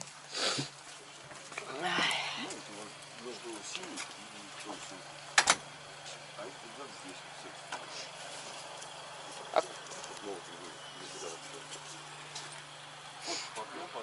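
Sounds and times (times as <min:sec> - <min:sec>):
low steady hum: 0:00.0 - 0:14.0
faint voices: 0:00.4 - 0:14.0.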